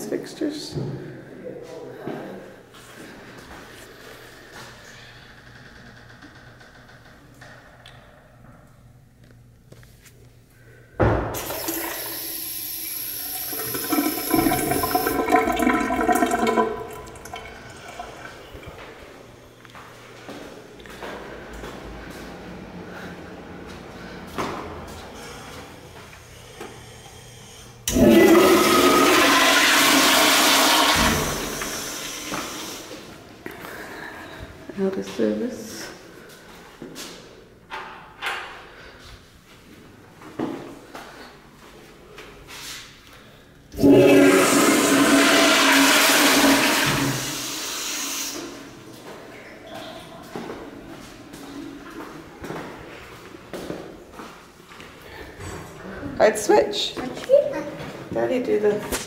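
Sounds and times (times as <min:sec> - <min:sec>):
toilet flushing: 0:11.3 - 0:19.4, 0:27.8 - 0:33.4, 0:43.7 - 0:52.5.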